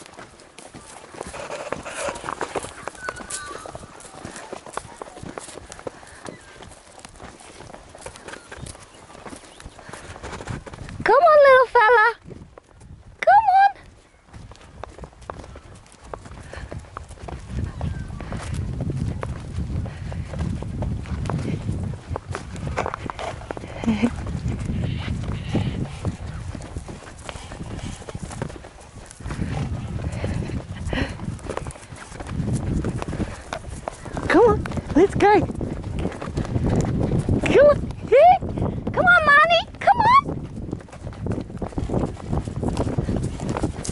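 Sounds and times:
hoof thuds on grass: 0.0s - 11.2s, 13.8s - 43.9s
horse call: 1.3s - 4.6s.

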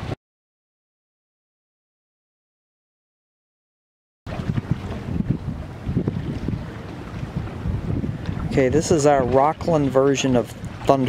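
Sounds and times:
seawater sloshing among rocks: 4.3s - 11.0s
wind buffeting microphone: 4.3s - 11.0s.

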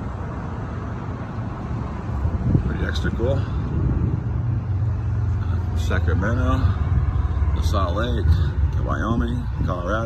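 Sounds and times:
vehicle engine rumbling: 0.0s - 10.0s
man's voice: 2.6s - 3.8s, 5.6s - 10.0s.

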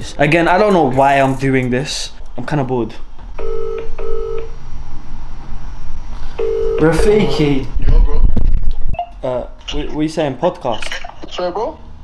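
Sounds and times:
phone ringback tone: 3.4s - 4.5s, 6.4s - 7.0s.

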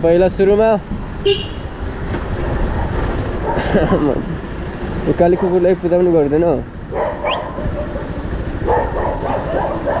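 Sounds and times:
motorcycle rumbling: 0.0s - 10.0s
dog barking: 2.6s - 4.1s, 5.4s - 5.6s, 6.9s - 10.0s.

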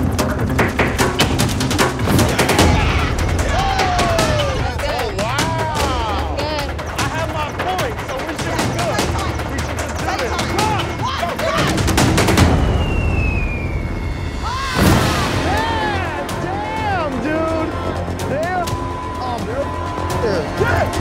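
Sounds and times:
helicopter rotor chopping: 0.0s - 13.3s
people yelling and whooping: 2.2s - 21.0s.

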